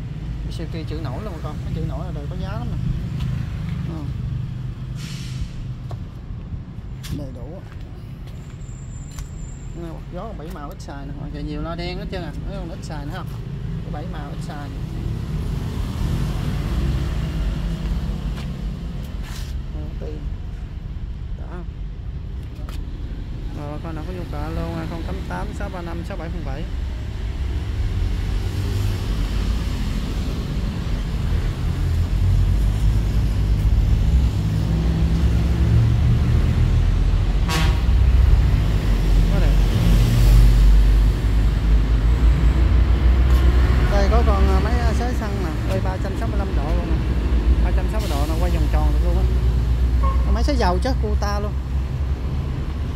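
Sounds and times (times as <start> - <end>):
vehicle horn toot: 50.0 - 50.3.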